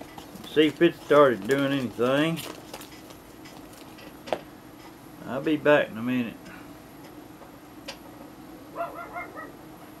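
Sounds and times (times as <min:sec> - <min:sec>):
steady low hum: 0:00.0 - 0:10.0
animal high-pitched calls: 0:08.8 - 0:09.6.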